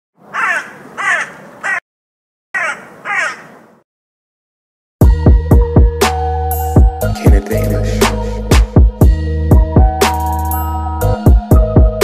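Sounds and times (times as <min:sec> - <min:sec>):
crow cawing: 0:00.3 - 0:01.8, 0:02.6 - 0:03.7.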